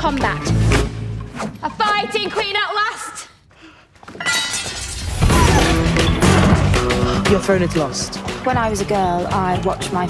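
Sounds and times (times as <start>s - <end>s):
rattling ringing debris: 4.2s - 5.5s
crash of something breaking: 4.3s - 6.6s.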